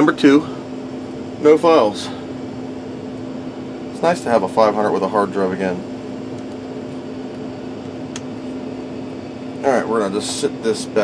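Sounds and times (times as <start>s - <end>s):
steady machine hum: 0.0s - 11.0s.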